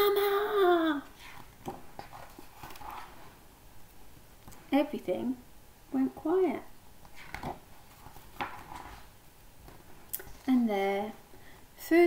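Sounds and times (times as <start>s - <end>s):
paper page rustling: 1.2s - 3.4s, 7.1s - 10.5s.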